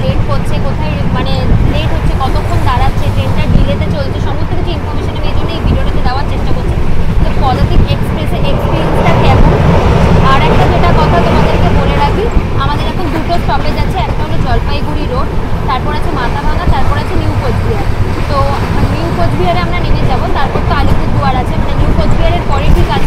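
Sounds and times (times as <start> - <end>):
moving train running noise: 0.0 - 23.0
woman talking: 0.0 - 23.0.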